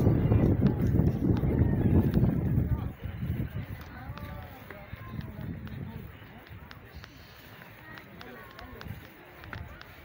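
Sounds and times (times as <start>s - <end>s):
low rumbling on microphone: 0.0s - 6.8s
distant people talking: 0.0s - 10.0s.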